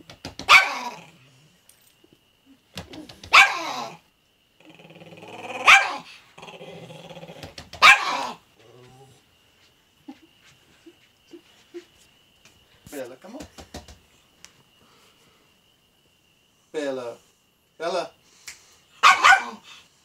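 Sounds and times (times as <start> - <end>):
small dog barking: 0.5 - 1.0, 3.3 - 4.0, 5.6 - 6.1, 7.8 - 8.4, 19.0 - 19.7
dog growling: 4.6 - 9.3.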